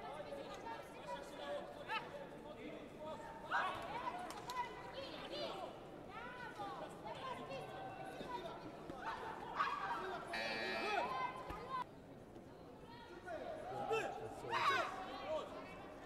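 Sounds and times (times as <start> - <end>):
shouts and chatter in sports hall: 0.0 - 16.0.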